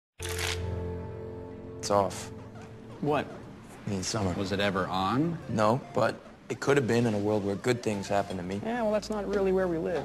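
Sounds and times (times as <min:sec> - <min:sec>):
held musical chord: 0:00.6 - 0:06.2.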